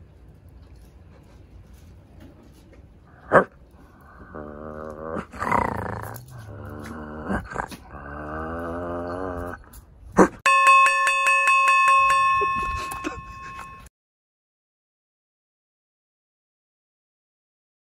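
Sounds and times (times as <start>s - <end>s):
dog growling low: 3.1s - 10.4s
steady ringing chime tone: 10.5s - 13.9s.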